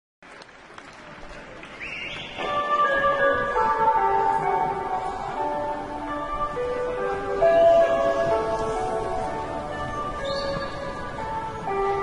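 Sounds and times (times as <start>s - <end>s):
audience applause: 0.2s - 2.9s.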